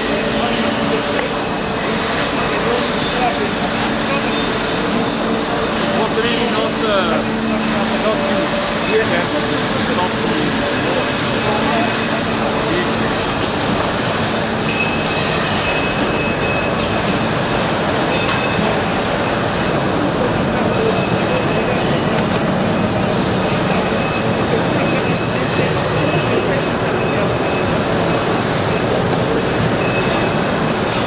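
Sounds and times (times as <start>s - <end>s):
industrial machinery din: 0.0s - 31.0s.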